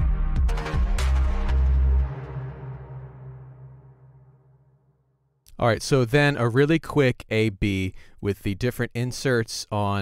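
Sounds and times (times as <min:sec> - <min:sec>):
electronic beat with bass and synth: 0:00.0 - 0:02.3.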